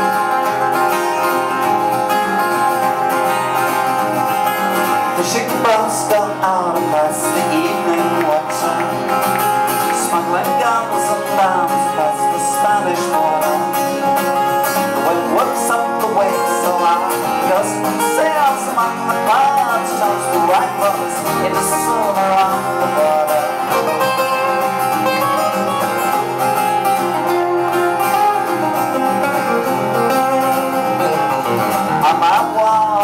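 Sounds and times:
picked guitar lead melody: 0.0 - 33.0
strummed acoustic guitar chords: 0.0 - 33.0.

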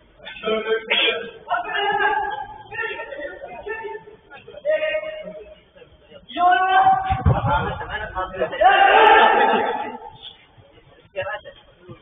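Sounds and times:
man shouting: 0.4 - 4.0, 6.4 - 7.2, 8.3 - 10.1.

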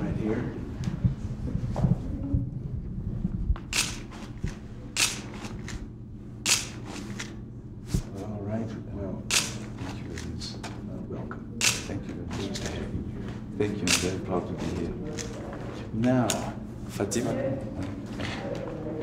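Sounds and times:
low room murmur: 0.0 - 19.0
camera shutters clicking: 3.7 - 5.8, 6.5 - 7.4, 9.3 - 10.4, 11.6 - 12.8, 13.8 - 15.4.

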